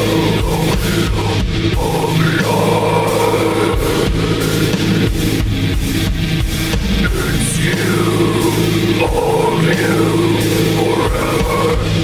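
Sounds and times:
distorted doom metal chords: 0:00.0 - 0:12.0.

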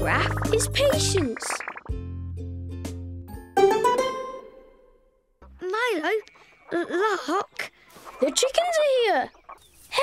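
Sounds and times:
cartoon chickens clucking: 0:00.0 - 0:01.9, 0:05.7 - 0:10.0.

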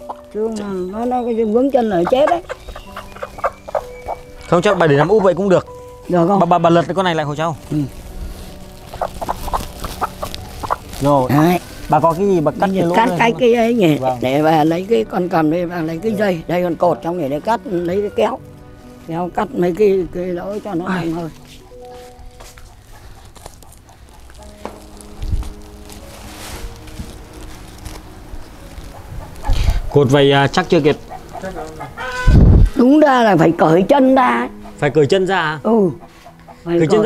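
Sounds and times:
hens clucking: 0:00.0 - 0:05.9, 0:07.8 - 0:13.4, 0:22.6 - 0:25.5, 0:28.8 - 0:32.5, 0:33.2 - 0:37.0
soft background music: 0:00.0 - 0:37.0
plastic sack rustling: 0:06.8 - 0:15.0, 0:20.4 - 0:32.8.

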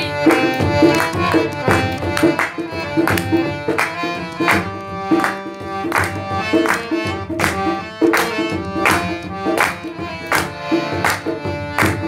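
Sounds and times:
hand drum beating: 0:00.0 - 0:12.0
harmonium playing: 0:00.0 - 0:12.0.

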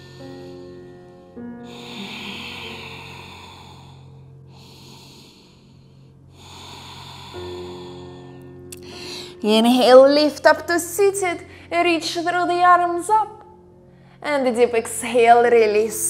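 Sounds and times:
slow breaths: 0:00.0 - 0:09.4
soft background music: 0:00.0 - 0:16.0.

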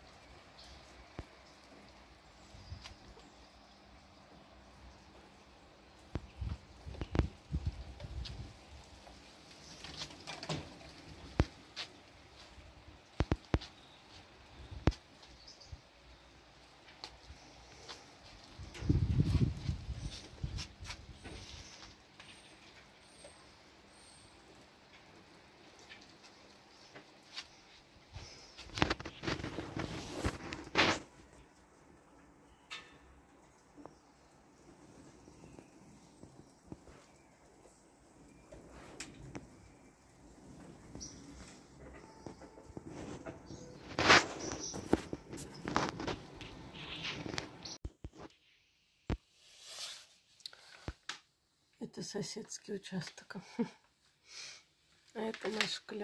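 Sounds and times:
rustling: 0:00.0 - 0:48.5, 0:49.1 - 0:51.3.

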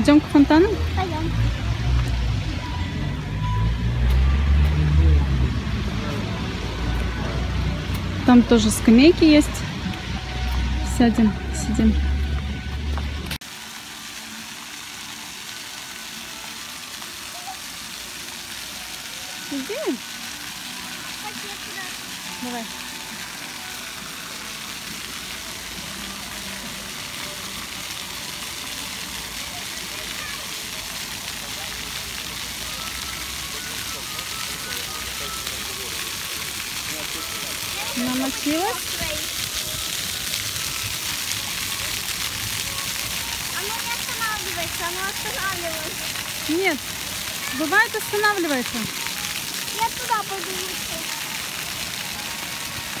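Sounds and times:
voice and music: 0:00.0 - 0:13.4
fountain water jets splashing: 0:00.0 - 0:53.0.

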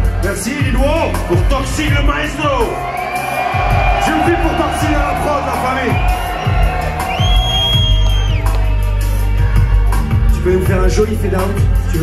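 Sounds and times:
crowd noise: 0:00.0 - 0:12.0
heavy bass beat: 0:00.0 - 0:12.0.

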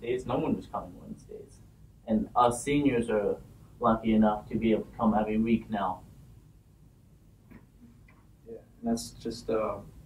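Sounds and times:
man speaking: 0:00.0 - 0:06.0, 0:08.5 - 0:09.8.

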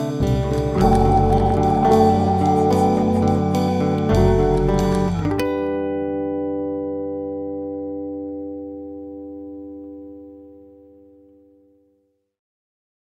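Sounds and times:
band music with guitars and drums: 0:00.0 - 0:06.0
final chord ringing: 0:00.6 - 0:05.5.

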